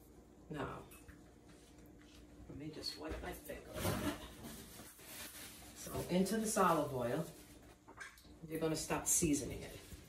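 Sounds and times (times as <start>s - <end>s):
plastic bag rustling: 3.7s - 7.7s.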